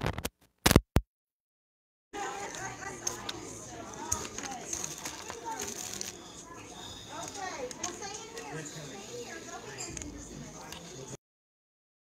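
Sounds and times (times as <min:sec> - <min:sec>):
children talking and playing: 0:02.2 - 0:11.2
indistinct chatter of voices: 0:02.2 - 0:11.2.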